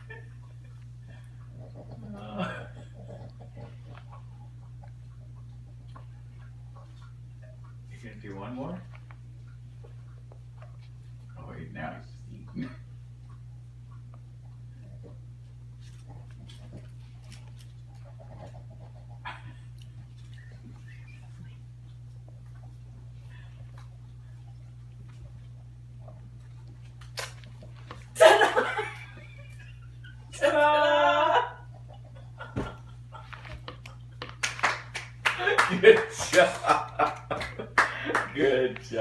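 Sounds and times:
steady low hum: 0:00.0 - 0:39.0
baby clapping hands: 0:34.3 - 0:36.7.

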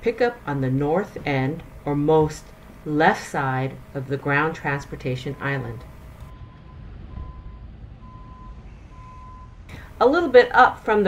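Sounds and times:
low rumble of traffic: 0:00.0 - 0:11.0
vehicle reversing alarm beeps: 0:04.6 - 0:10.0.

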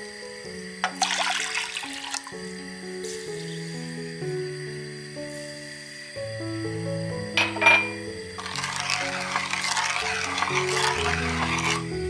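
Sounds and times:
soft background music: 0:00.0 - 0:12.0
liquid pouring into a pot: 0:00.8 - 0:02.4, 0:08.4 - 0:12.0.

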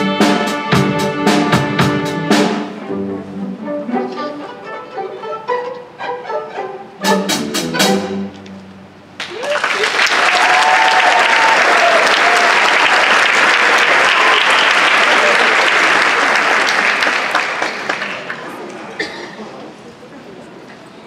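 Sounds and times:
audience applauding: 0:09.2 - 0:18.9.

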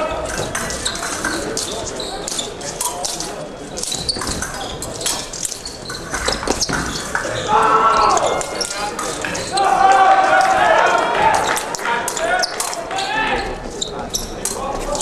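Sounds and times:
voices in a hall: 0:00.0 - 0:15.0
shoes squeaking and stamping: 0:00.3 - 0:09.7, 0:12.2 - 0:15.0.

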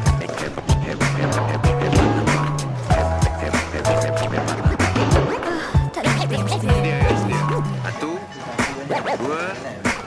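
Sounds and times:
skateboard wheels rolling on pavement: 0:00.0 - 0:05.6
music with drum beat and bass: 0:00.0 - 0:07.9, 0:08.6 - 0:10.0.

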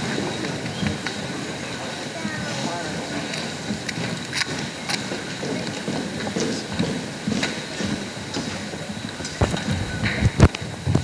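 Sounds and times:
audience room noise: 0:00.0 - 0:11.0
microphone handling thumps: 0:09.3 - 0:11.0.

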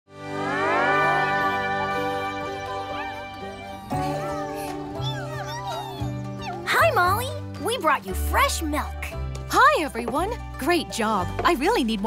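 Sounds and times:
background music with sustained chords: 0:00.2 - 0:10.6.

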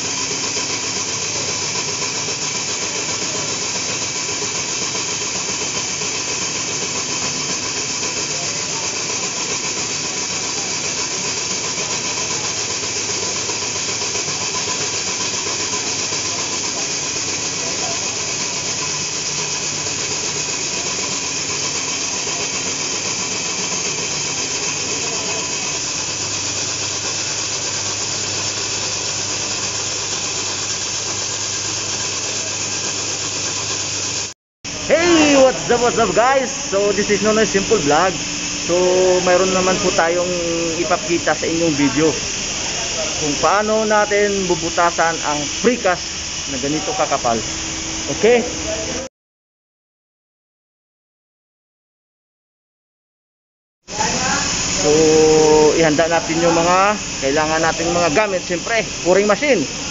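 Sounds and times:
core drill grinding concrete: 0:00.0 - 0:49.1, 0:53.9 - 0:59.9.

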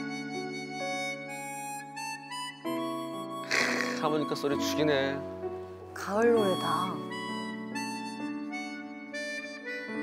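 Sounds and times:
harmonica slow melody: 0:00.0 - 0:10.0.

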